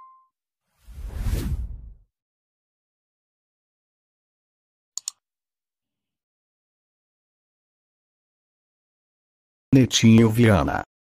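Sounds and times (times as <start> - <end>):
ringing bell ding: 0.0 - 0.3
whoosh with deep rumble: 0.9 - 2.0.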